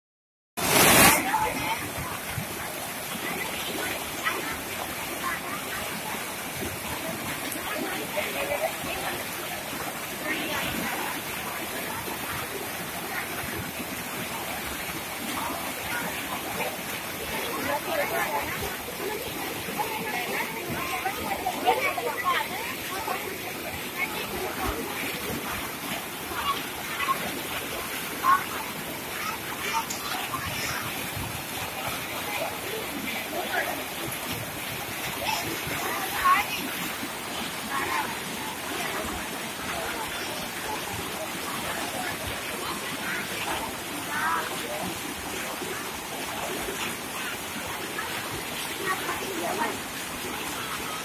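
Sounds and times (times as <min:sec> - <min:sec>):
river rushing over boulders: 0:00.6 - 0:51.0.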